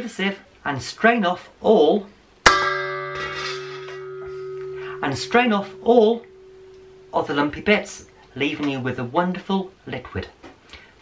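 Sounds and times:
steel cookware ringing: 2.5 - 8.2.

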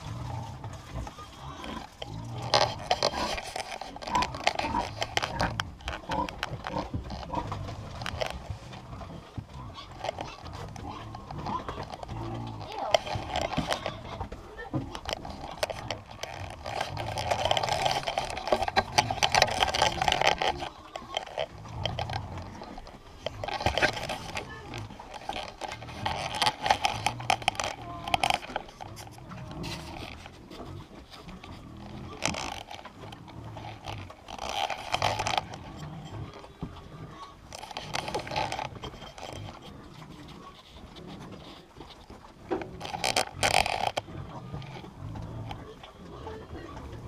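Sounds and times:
piglets grunting: 0.0 - 41.8
straw rustling: 0.0 - 47.0.

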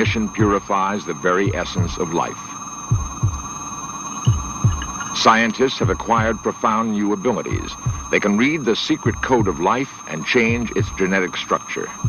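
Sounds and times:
heartbeat-like low thuds: 0.0 - 0.7, 1.5 - 2.2, 2.9 - 3.6, 4.2 - 5.2, 5.8 - 6.5, 7.5 - 8.2, 9.0 - 9.7, 10.4 - 11.1
steady electronic hum: 0.0 - 12.0.

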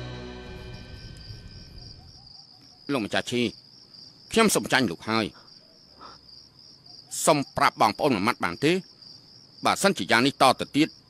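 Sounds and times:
crickets trilling: 0.7 - 11.0.

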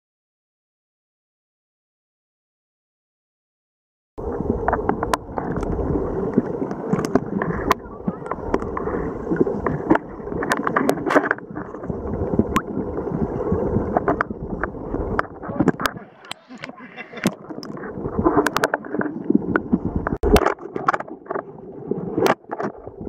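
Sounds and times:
water sloshing and bubbling: 4.2 - 23.0
sharp underwater clicks: 4.6 - 11.8, 13.9 - 21.5.

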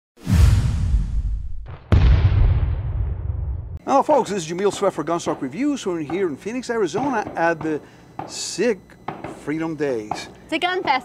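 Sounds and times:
deep whooshing impact with rumble: 0.2 - 3.8.

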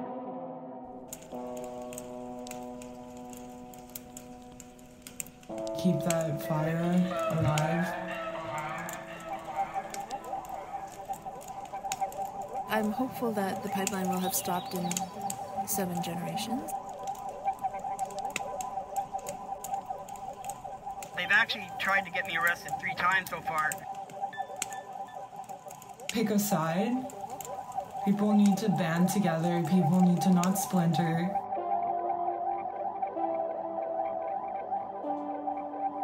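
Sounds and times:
sustained chord: 0.0 - 25.7, 26.7 - 36.0
wood fire crackling: 1.0 - 31.6.

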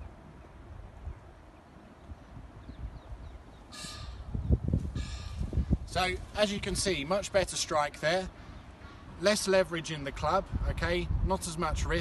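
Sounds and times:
wind rumbling on microphone: 0.0 - 7.8, 8.4 - 12.0
harsh bird call: 3.6 - 5.8.

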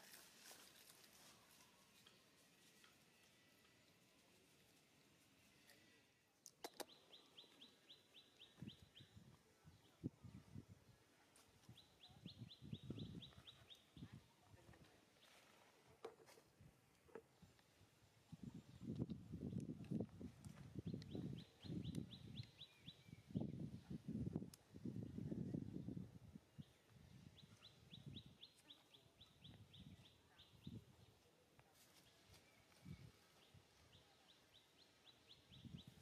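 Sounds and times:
bird chirping: 6.6 - 9.2, 20.8 - 23.6.

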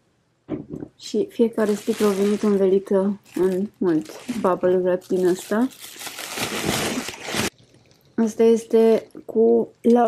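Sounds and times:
bubble wrap rustling and crinkling: 1.5 - 7.6.

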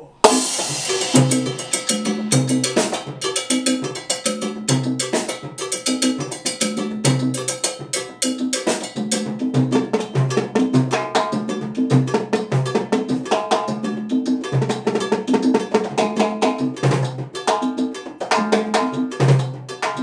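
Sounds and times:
cowbell and timbales: 0.2 - 20.0.

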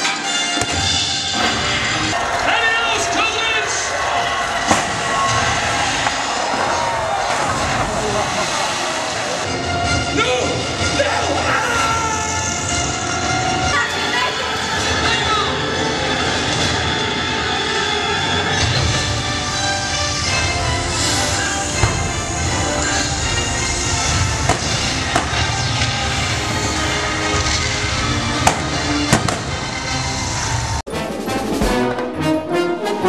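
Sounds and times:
show music: 0.0 - 33.0
pyrotechnic fire blasts: 0.4 - 11.1, 18.4 - 30.8.

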